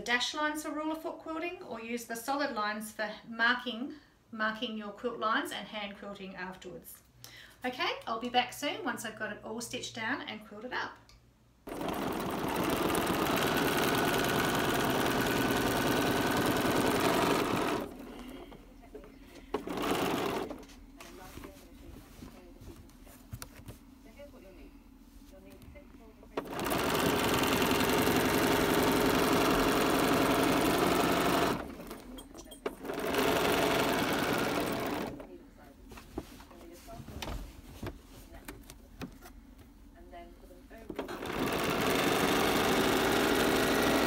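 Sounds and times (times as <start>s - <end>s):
sewing machine needle running fast: 11.7s - 18.3s, 19.6s - 20.6s, 26.4s - 32.1s, 32.7s - 35.2s, 41.0s - 44.0s.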